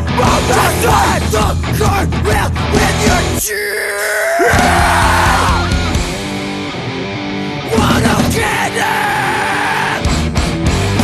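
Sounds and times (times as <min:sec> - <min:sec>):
yelled punk vocal: 0:00.0 - 0:06.3, 0:07.5 - 0:11.0
distorted electric guitars: 0:00.0 - 0:11.0.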